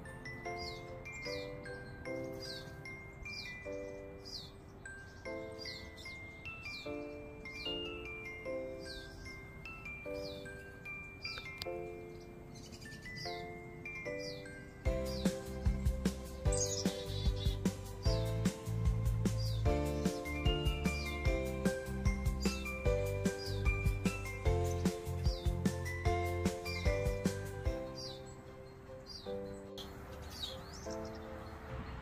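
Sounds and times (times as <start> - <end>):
wind chimes ringing: 0.0 - 18.8, 19.6 - 30.9
songbird chirping: 0.0 - 32.0.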